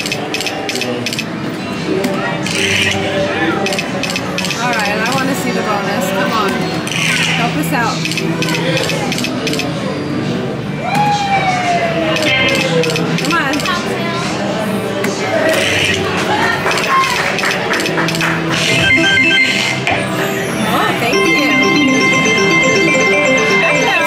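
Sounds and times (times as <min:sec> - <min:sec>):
casino crowd chatter: 0:00.0 - 0:24.0.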